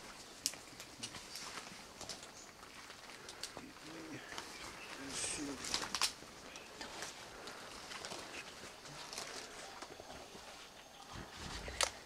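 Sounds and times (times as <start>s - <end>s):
footsteps through wet undergrowth: 1.1s - 11.0s.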